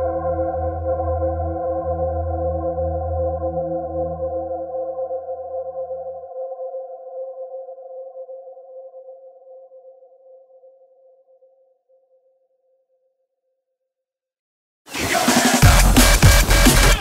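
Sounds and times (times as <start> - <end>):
held synthesizer chord: 0.0 - 10.7.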